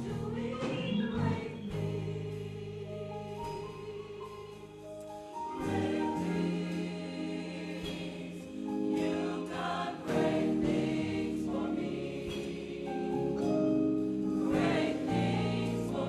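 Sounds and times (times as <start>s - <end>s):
gospel choir singing: 0.0s - 16.0s.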